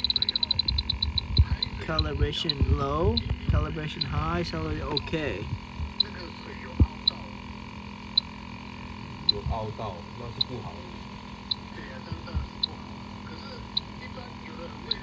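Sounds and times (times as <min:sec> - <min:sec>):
leak detector beeping: 0:00.0 - 0:15.0
steady hum: 0:00.0 - 0:15.0.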